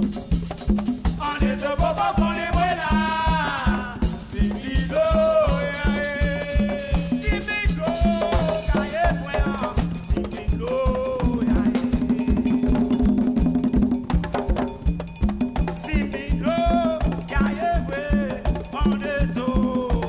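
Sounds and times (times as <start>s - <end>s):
hand drums and drum kit: 0.0s - 20.0s
man singing chant phrases: 1.2s - 12.8s, 15.9s - 20.0s.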